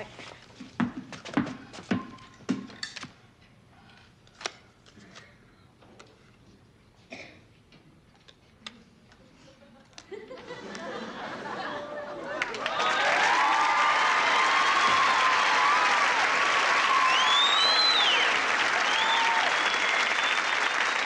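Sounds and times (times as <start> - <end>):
basketball bouncing on wooden floor: 0.6 - 2.8.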